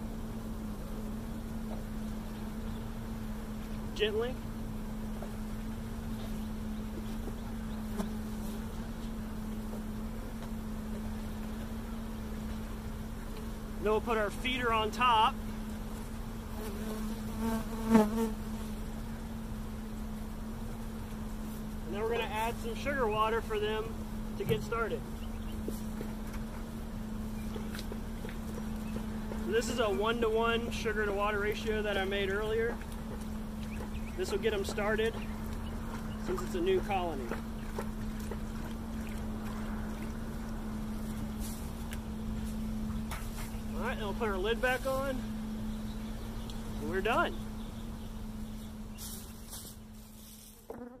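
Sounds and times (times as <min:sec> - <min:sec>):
honey bees humming: 0:00.0 - 0:51.0.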